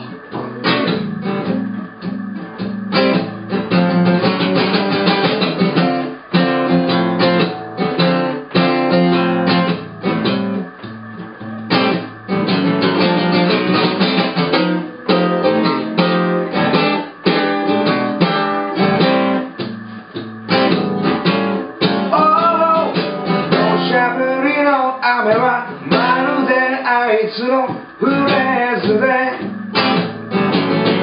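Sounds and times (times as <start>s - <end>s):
acoustic guitar blues strumming: 0.0s - 31.0s
man singing: 22.1s - 29.7s.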